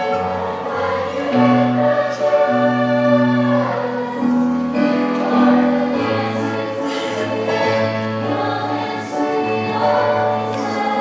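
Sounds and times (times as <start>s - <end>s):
teenage choir singing: 0.0s - 11.0s.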